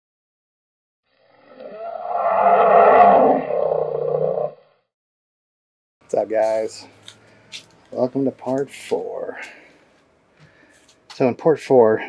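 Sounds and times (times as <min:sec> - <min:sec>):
long roar sound effect: 0:01.2 - 0:04.8.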